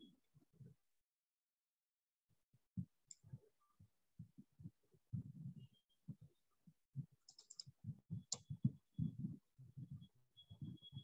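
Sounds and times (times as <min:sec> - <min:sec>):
computer mouse clicks: 0:07.3 - 0:07.7.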